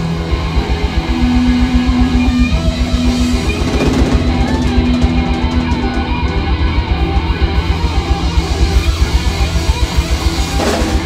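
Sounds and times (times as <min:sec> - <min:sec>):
fast low pulse: 0:00.0 - 0:11.0
live rock band playing: 0:00.0 - 0:11.0.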